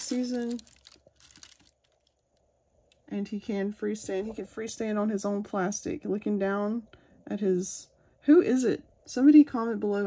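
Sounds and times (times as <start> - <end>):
tissue paper rustling: 0.0 - 2.0.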